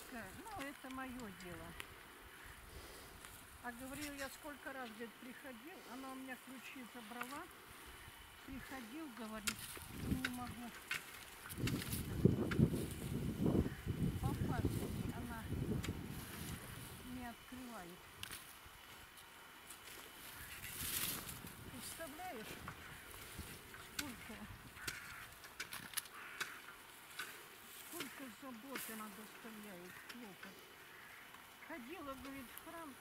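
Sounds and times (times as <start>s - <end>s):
rustle: 0.0s - 33.0s.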